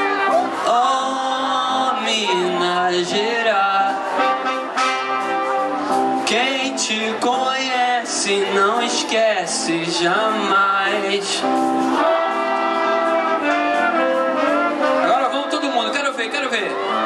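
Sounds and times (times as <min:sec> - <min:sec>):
voices singing along: 0:00.0 - 0:14.6
trumpet and trombone melody: 0:00.0 - 0:17.0.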